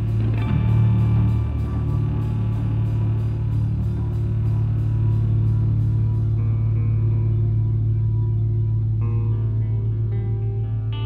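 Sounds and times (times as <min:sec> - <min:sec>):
drum kit: 0:00.0 - 0:07.0
cymbals: 0:00.0 - 0:09.0
electric guitar and bass: 0:00.0 - 0:11.0.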